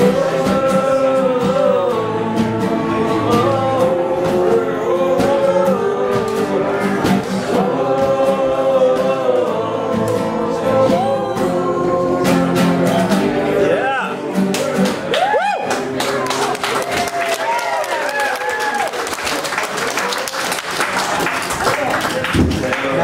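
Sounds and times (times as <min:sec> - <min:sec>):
voices singing wordless choir: 0:00.0 - 0:14.5
acoustic guitar: 0:00.0 - 0:23.0.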